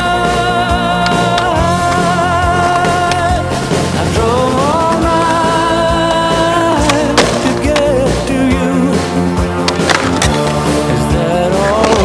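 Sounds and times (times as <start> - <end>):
rock song: 0.0 - 12.0
skateboard rolling on concrete: 0.0 - 12.0
skateboard clacks: 0.5 - 9.0, 9.6 - 12.0.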